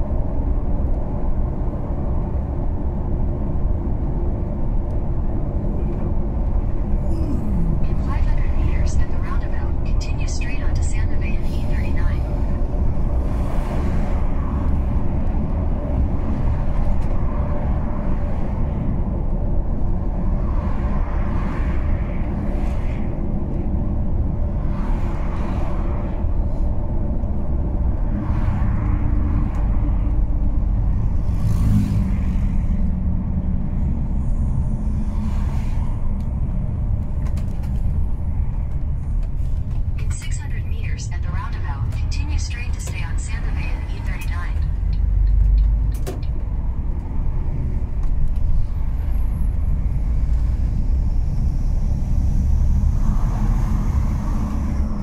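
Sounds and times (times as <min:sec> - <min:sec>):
truck engine and road rumble: 0:00.0 - 0:55.0
person talking: 0:40.0 - 0:44.7.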